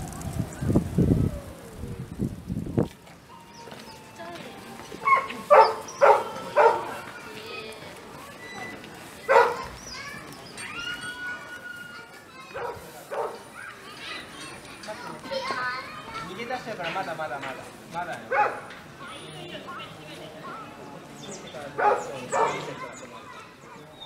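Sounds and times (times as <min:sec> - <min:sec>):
people's voices in background: 0:00.0 - 0:24.0.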